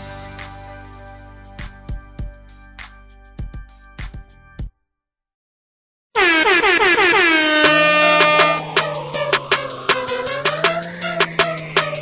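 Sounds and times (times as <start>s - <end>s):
hip hop beat with deep bass: 1.6s - 4.7s, 7.6s - 12.0s
air horn sound effect: 6.2s - 12.0s.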